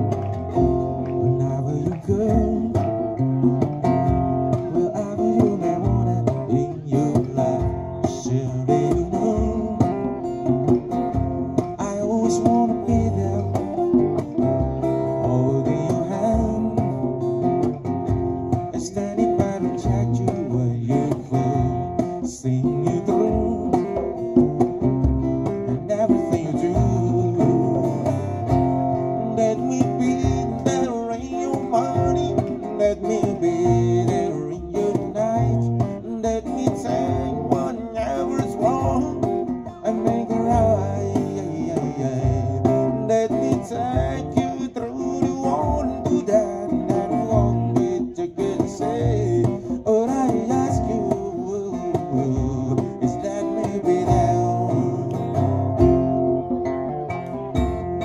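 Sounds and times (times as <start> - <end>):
djembe beat: 0.0 - 58.0
strummed acoustic guitars: 0.0 - 58.0.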